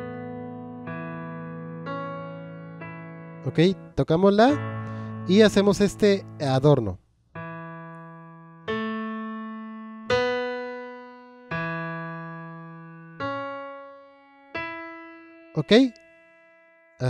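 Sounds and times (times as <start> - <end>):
piano notes ringing: 0.0 - 17.0.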